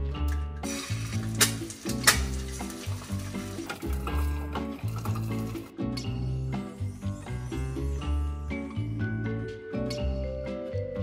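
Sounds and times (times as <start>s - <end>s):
lo-fi background music: 0.0s - 11.0s
eggs sizzling in a pan: 0.6s - 5.7s.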